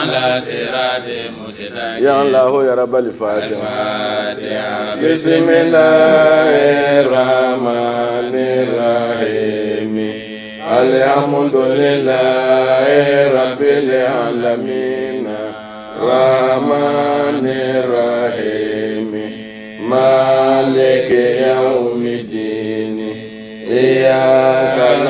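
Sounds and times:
man chanting: 0.0s - 25.0s.

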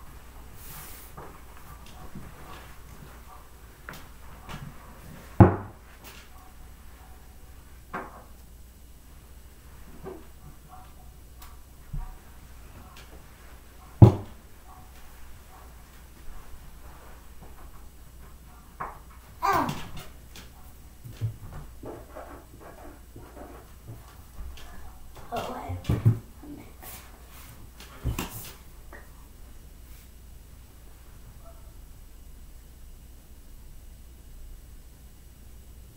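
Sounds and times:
knocks and bumps on desks: 5.4s - 5.8s, 13.9s - 14.5s, 18.8s - 26.4s
child's vocal sounds: 19.4s - 19.9s.

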